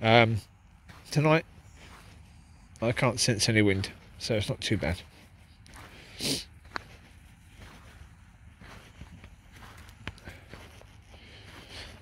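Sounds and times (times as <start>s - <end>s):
breathy puff: 5.9s - 6.6s.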